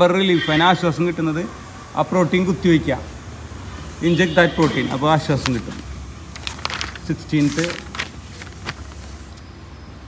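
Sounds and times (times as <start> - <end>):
paper rustling: 4.7 - 9.4.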